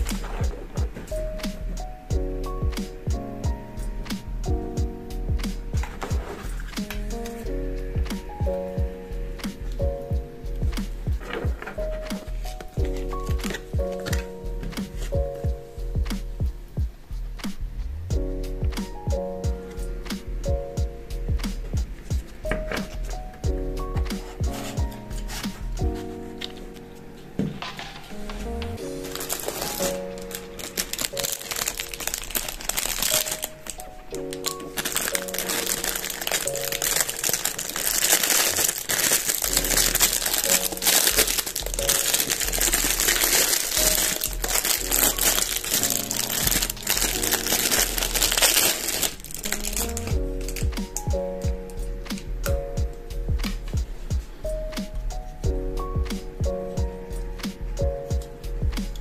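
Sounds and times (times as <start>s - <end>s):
light background music: 0.0s - 59.0s
plastic bag crinkling: 28.1s - 50.7s.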